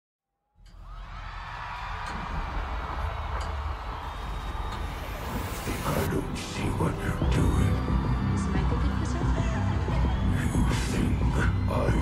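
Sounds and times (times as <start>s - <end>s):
crowd screaming: 0.7s - 12.0s.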